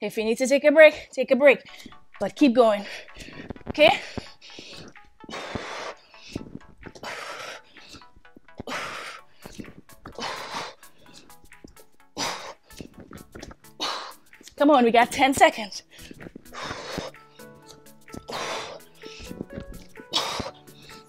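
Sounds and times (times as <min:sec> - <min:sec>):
faint background music: 0:00.0 - 0:21.0
woman breathing hard: 0:02.8 - 0:14.4, 0:15.8 - 0:21.0.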